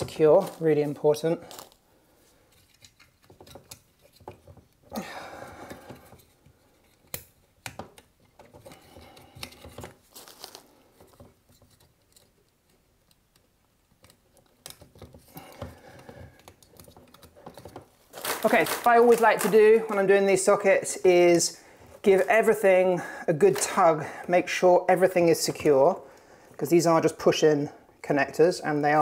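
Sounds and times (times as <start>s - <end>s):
wires rustling: 0.0s - 29.0s
small plastic clicks: 11.2s - 17.9s.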